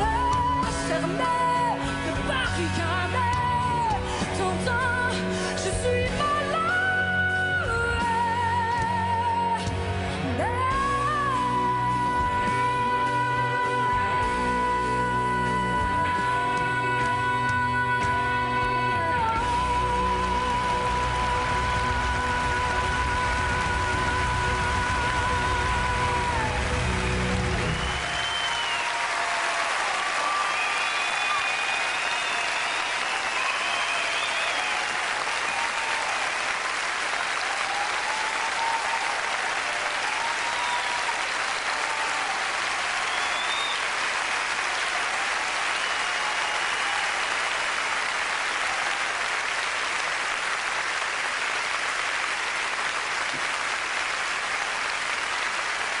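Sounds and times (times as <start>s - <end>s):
audience applauding and cheering: 0.0s - 56.0s.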